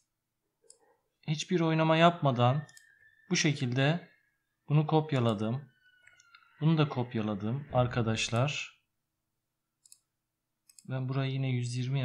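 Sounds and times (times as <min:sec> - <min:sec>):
computer mouse clicks: 0:00.0 - 0:00.8, 0:06.0 - 0:06.4, 0:09.8 - 0:10.9
man's voice: 0:06.6 - 0:08.8.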